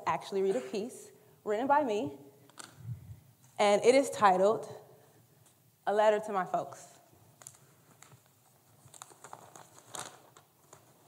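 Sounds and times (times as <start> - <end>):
paper handling clicks: 7.4 - 11.0.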